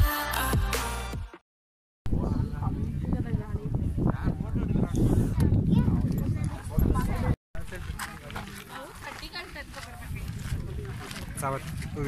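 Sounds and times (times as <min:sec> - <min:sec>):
wind rumble on microphone: 0:02.1 - 0:08.4, 0:09.2 - 0:12.0
people talking in background: 0:02.1 - 0:12.0.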